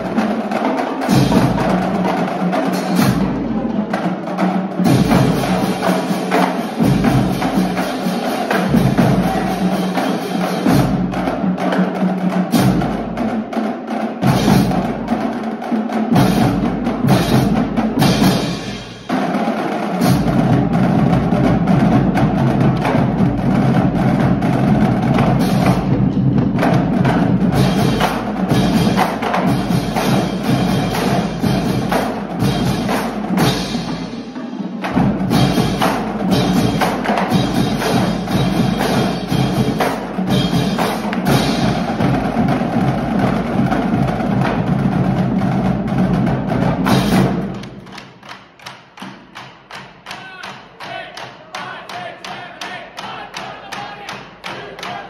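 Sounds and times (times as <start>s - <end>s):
marching bass drums: 0.0s - 48.0s
snare drums: 0.0s - 55.0s
tenor drums: 0.0s - 55.0s.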